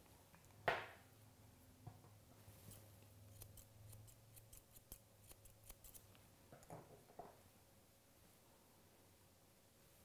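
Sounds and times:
shears snipping hair: 0:02.6 - 0:06.2.

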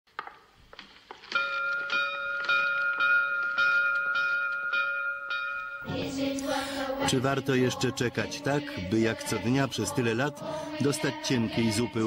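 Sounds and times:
large bell ringing: 0:01.4 - 0:07.0.

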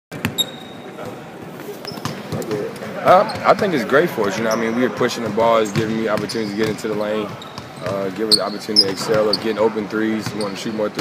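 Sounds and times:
high shoe squeak: 0:00.2 - 0:01.0, 0:01.6 - 0:02.2, 0:04.4 - 0:04.8, 0:06.4 - 0:09.6, 0:10.2 - 0:10.9
murmur of voices in a hall: 0:00.2 - 0:11.0.

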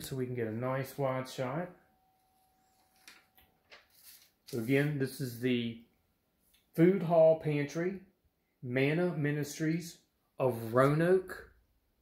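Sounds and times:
faint steady tone: 0:00.1 - 0:03.8.

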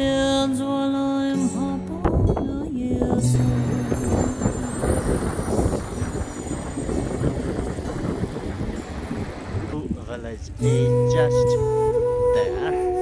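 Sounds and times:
river rushing over rocks: 0:03.3 - 0:09.8.

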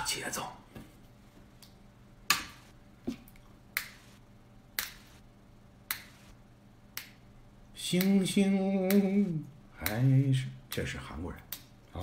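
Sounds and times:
sharp hand clicks: 0:04.8 - 0:05.0, 0:05.9 - 0:06.2, 0:08.8 - 0:09.2.

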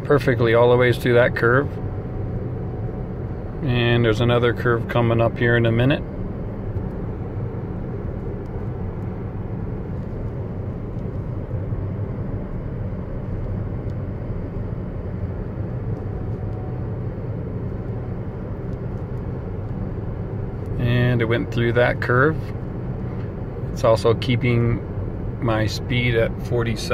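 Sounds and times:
road and tyre noise in car: 0:00.0 - 0:26.9.

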